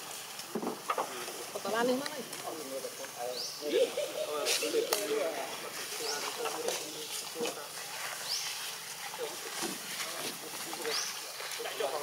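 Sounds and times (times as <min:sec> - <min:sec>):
indistinct voices talking: 0:00.8 - 0:12.0.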